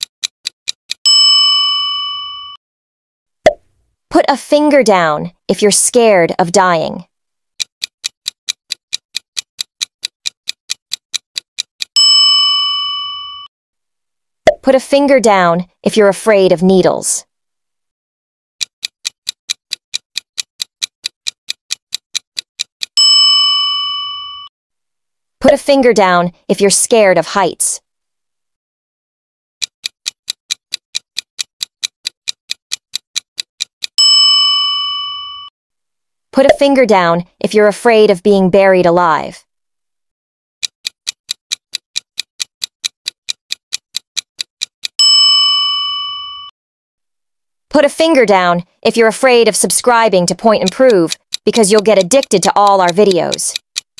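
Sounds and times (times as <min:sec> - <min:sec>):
clock ticking fast: 0:00.0 - 0:01.0, 0:07.6 - 0:12.0, 0:18.6 - 0:23.0, 0:29.6 - 0:34.0, 0:40.6 - 0:45.0, 0:49.1 - 0:53.9
bell ding: 0:01.1 - 0:02.6, 0:12.0 - 0:13.5, 0:23.0 - 0:24.5, 0:34.0 - 0:35.5, 0:45.0 - 0:46.5.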